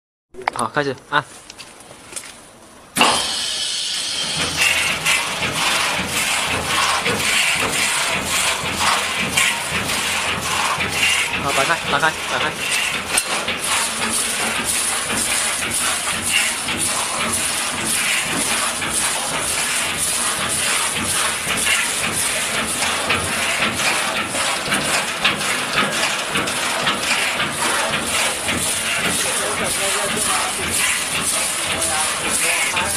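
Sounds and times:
compressed air hissing: 3.0s - 9.5s
loud steady air hiss: 3.0s - 23.1s
cleaning liquid spraying: 3.1s - 11.2s.

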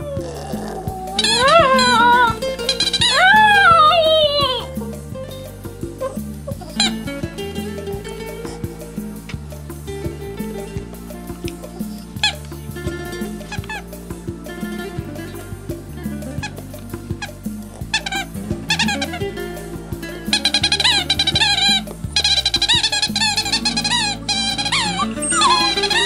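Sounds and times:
dog whining yelps: 0.0s - 5.1s, 5.9s - 7.0s, 20.3s - 26.0s
song with steady beat: 0.0s - 26.0s.

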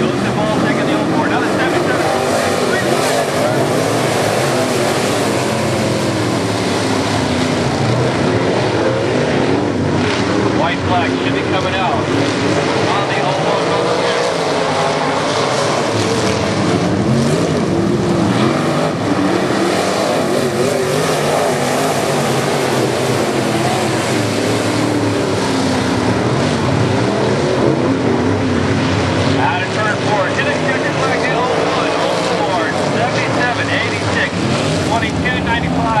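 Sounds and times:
race car engines at speed: 0.0s - 36.0s.

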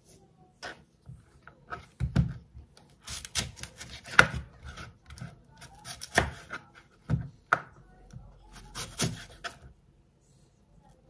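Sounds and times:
knife slicing an apple: 1.6s - 7.7s, 8.5s - 9.8s.

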